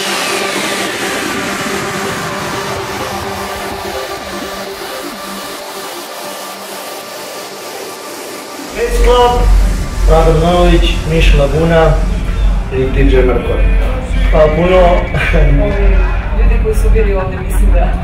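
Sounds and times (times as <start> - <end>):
noise sweep with falling whistle tone: 8.7 - 15.0.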